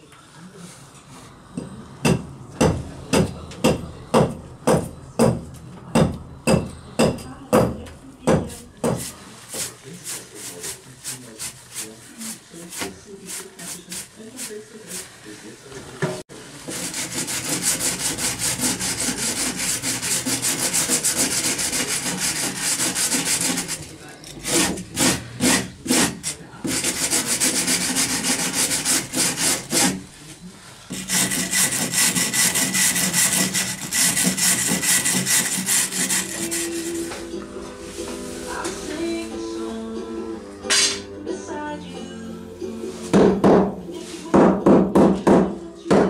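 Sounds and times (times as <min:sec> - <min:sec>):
brush scrubbing wooden beam: 0:08.5 - 0:15.4, 0:16.6 - 0:30.0, 0:30.9 - 0:37.2.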